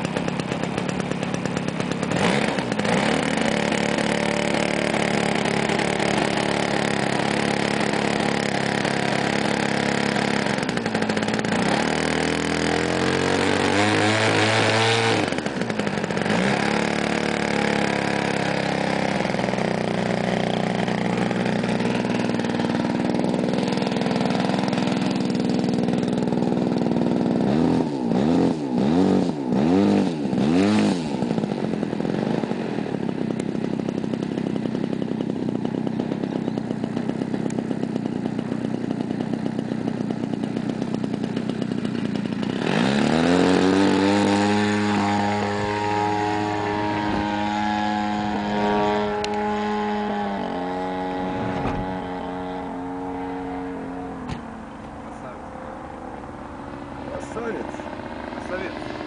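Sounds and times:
engine throttle blips: 0:00.0 - 0:59.0
model plane engine revving: 0:00.0 - 0:59.0.

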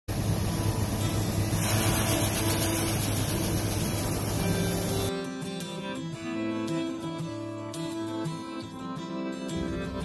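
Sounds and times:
auger hiss: 0:00.1 - 0:05.1
combine harvester engine hum: 0:00.1 - 0:05.1.

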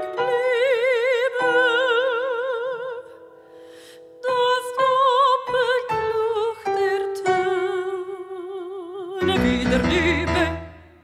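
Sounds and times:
woman singing operatically: 0:00.0 - 0:03.2, 0:04.2 - 0:11.0.

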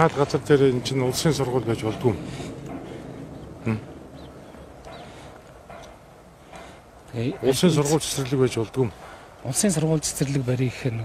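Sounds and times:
faint background noise: 0:00.0 - 0:11.0
man saying eh: 0:03.6 - 0:03.9, 0:07.2 - 0:08.3.

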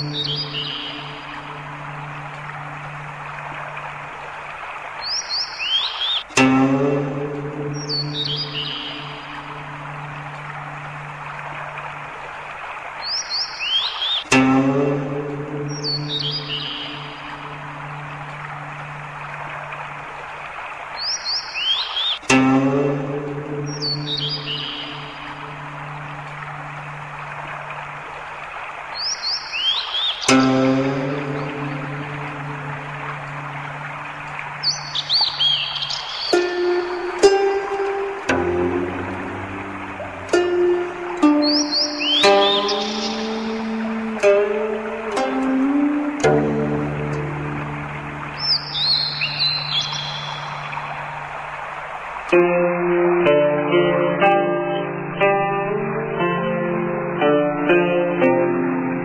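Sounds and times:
bird chirping: 0:00.0 - 0:02.6, 0:05.0 - 0:06.3, 0:07.7 - 0:10.1, 0:13.0 - 0:14.3, 0:15.6 - 0:18.6, 0:21.0 - 0:22.3, 0:23.6 - 0:26.7, 0:28.9 - 0:38.2, 0:38.9 - 0:46.2, 0:46.8 - 0:51.5
background hiss: 0:00.0 - 0:52.8
plucked zither note: 0:06.3 - 0:11.0, 0:14.3 - 0:19.0, 0:22.2 - 0:27.0, 0:30.3 - 0:35.0, 0:36.3 - 0:50.8.

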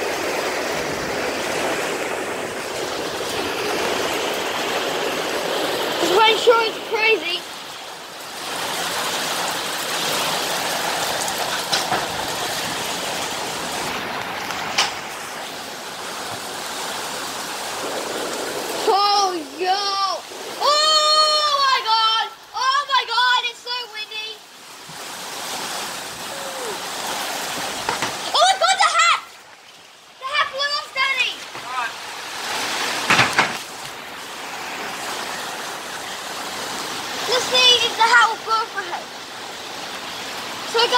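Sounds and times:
heavy rain pouring: 0:00.0 - 0:40.9
high-pitched voice calling out: 0:18.8 - 0:24.4, 0:28.3 - 0:29.3, 0:30.2 - 0:32.0.

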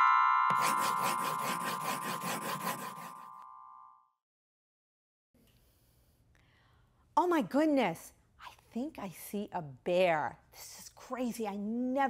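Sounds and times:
bright chime chord: 0:00.0 - 0:01.4.

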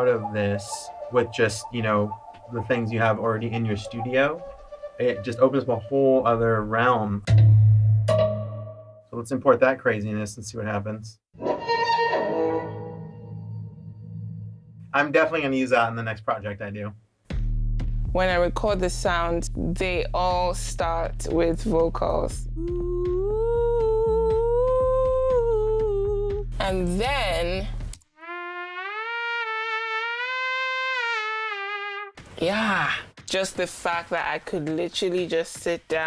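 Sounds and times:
synthesized violin note: 0:11.4 - 0:14.2.

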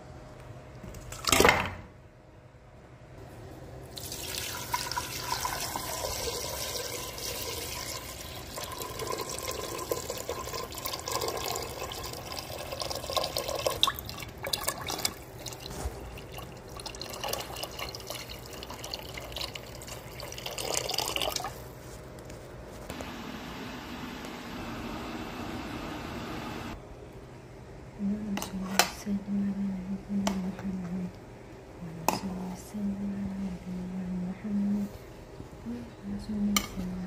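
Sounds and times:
water pouring into metal pot: 0:03.9 - 0:21.6.

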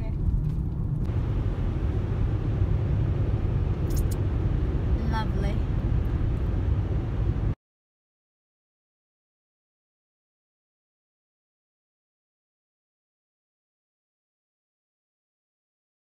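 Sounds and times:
car engine and road rumble: 0:00.0 - 0:07.6.

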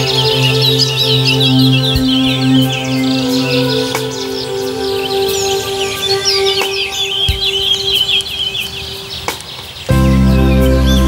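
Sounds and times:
new-age synthesizer music: 0:00.0 - 0:11.0
songbirds chirping and trilling: 0:00.0 - 0:11.0.

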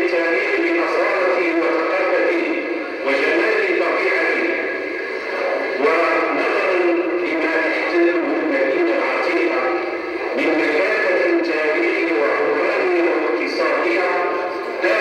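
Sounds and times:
man reading aloud through microphone: 0:00.0 - 0:15.0.

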